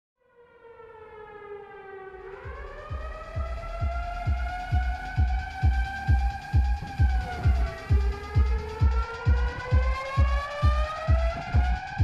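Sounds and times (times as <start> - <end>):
air-raid siren wail: 0.2 - 12.0
deep bass kick pulsing: 2.2 - 12.0.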